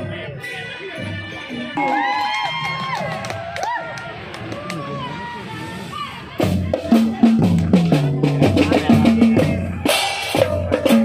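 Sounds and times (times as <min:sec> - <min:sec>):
crowd of children talking: 0:00.0 - 0:11.0.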